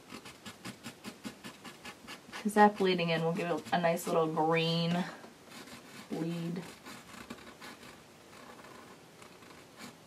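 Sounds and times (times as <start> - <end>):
marker scratching on canvas: 0.0 - 10.0.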